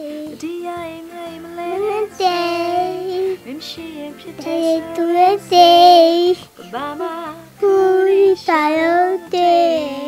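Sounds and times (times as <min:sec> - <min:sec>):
small child singing: 0:00.0 - 0:10.0.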